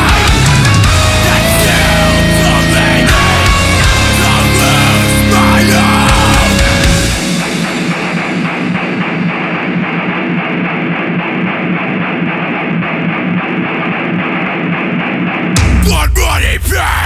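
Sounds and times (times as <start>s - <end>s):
heavy metal guitars and drums: 0.0s - 17.0s.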